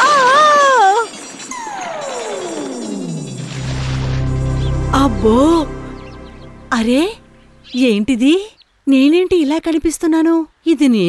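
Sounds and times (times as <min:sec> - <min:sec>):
descending glide sound effect: 0:01.6 - 0:08.0.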